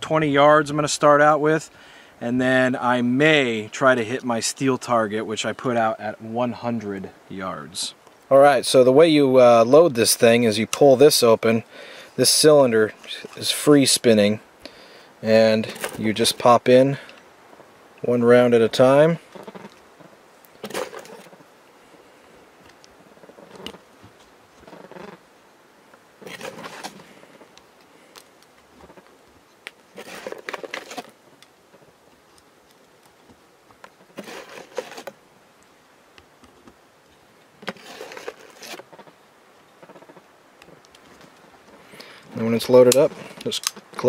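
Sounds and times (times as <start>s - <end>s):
revolver loading metallic clicks: 42.9s - 44.0s.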